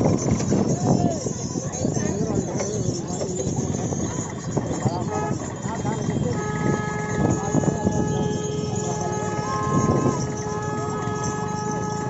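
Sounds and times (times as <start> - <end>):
cart rattling: 0.0 - 12.0
people calling out: 6.5 - 11.2.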